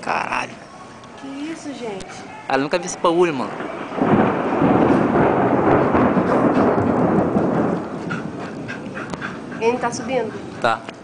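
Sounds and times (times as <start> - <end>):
loud rumble of thunder: 3.1 - 10.6.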